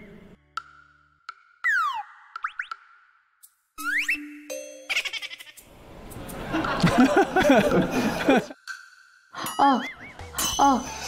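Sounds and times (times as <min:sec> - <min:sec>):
cartoon falling whistle glide: 0:01.6 - 0:02.2, 0:03.8 - 0:04.3
cartoon boings: 0:01.6 - 0:02.8.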